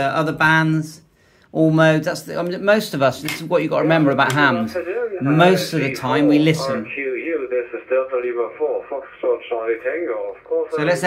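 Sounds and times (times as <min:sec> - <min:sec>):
man talking over radio: 0:04.5 - 0:11.0.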